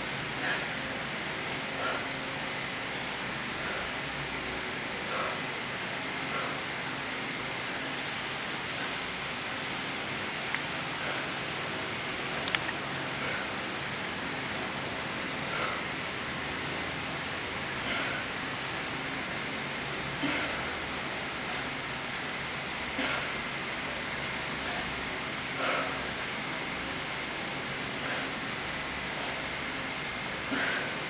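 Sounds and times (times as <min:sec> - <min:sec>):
steady background hiss: 0:00.0 - 0:31.0.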